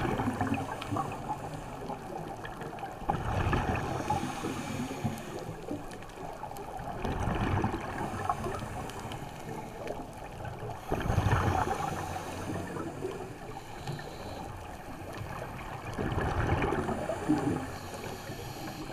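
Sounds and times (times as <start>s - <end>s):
diver exhaling bubbles underwater: 16.0s - 17.6s.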